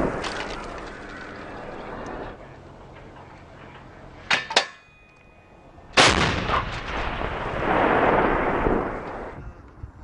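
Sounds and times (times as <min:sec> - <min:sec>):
field gun firing: 0:06.0 - 0:09.0.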